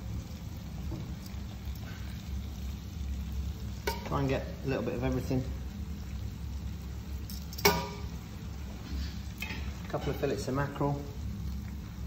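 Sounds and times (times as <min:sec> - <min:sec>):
low kitchen hum: 0:00.0 - 0:12.0.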